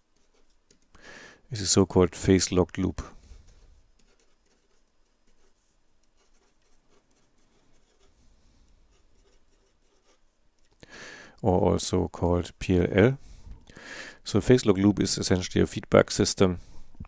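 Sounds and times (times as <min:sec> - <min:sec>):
felt-tip pen scratching paper: 0:03.5 - 0:05.6.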